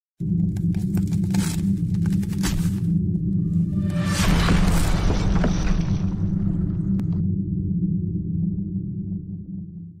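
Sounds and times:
low deep rumble of a boom: 3.2s - 9.4s.

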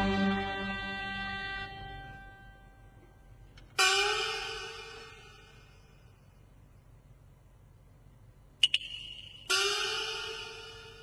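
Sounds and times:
metallic percussion strikes: 3.7s - 6.1s, 8.6s - 11.0s.

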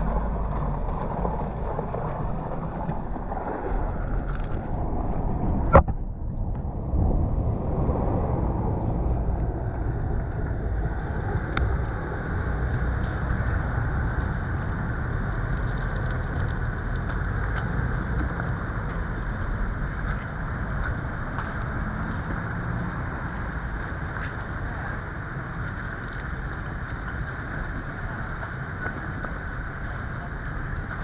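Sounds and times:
low wind rumble: 0.0s - 31.0s.

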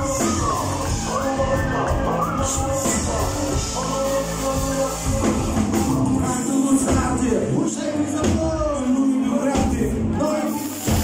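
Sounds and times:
live band music: 0.0s - 11.0s
man singing: 0.0s - 11.0s.

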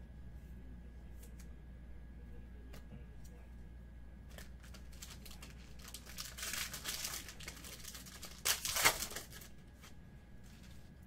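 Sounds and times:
plastic wrapper crinkling and tearing: 4.3s - 9.6s.

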